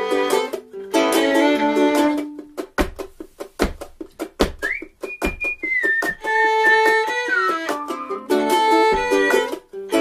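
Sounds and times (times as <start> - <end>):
ukulele strumming: 0.0 - 10.0.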